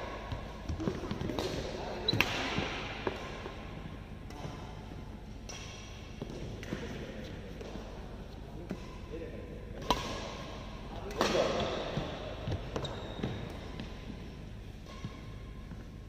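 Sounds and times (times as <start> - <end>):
racket hitting shuttlecock: 0.0 - 8.0, 9.8 - 14.1.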